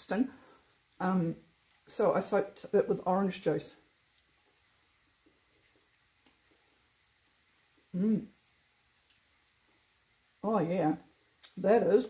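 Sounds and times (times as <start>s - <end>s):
soft chewing: 0.7s - 1.9s, 3.8s - 8.0s, 8.9s - 10.0s.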